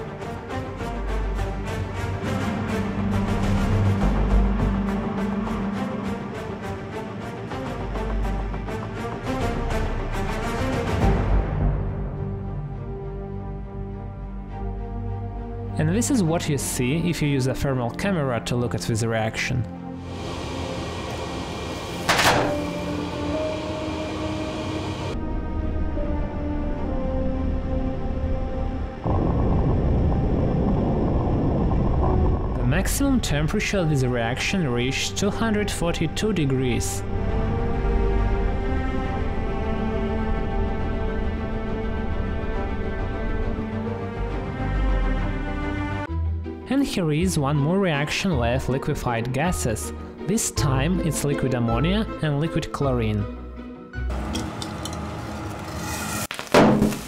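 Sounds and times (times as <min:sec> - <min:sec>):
chemical reaction roaring: 0:28.9 - 0:33.6.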